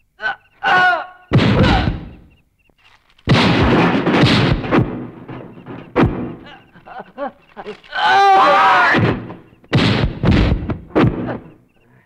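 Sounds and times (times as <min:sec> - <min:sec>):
loud crashing impact: 0:03.3 - 0:06.5, 0:08.8 - 0:11.4.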